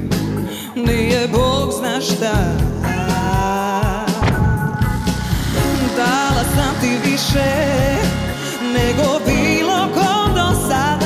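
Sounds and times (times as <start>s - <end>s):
live jazz-fusion band music: 0.0s - 11.0s.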